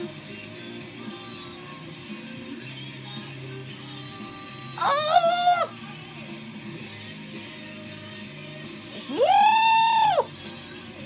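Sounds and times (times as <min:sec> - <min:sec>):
rock music with guitar: 0:00.0 - 0:11.0
high-pitched wordless vocal cry: 0:04.7 - 0:05.8, 0:09.1 - 0:10.3.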